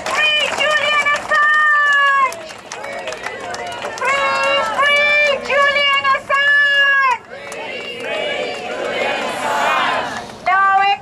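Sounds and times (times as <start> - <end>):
crowd chanting: 7.1 - 10.3.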